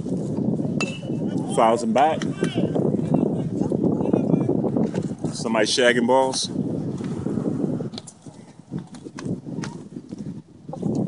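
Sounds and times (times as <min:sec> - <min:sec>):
metal bat hitting ball: 0:00.8 - 0:01.2.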